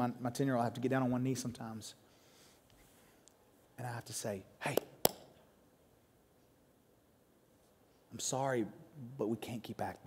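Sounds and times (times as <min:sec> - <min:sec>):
sharp hand clap with echo: 0:04.7 - 0:05.3.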